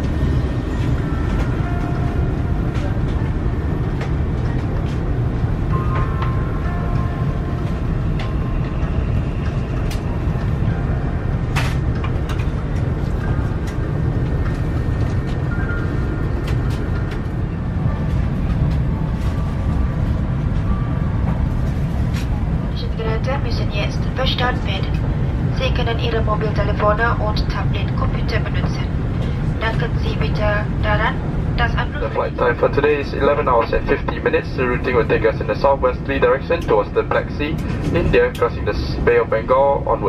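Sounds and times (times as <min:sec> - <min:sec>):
faint music: 0:00.0 - 0:40.0
public-address announcement: 0:00.0 - 0:40.0.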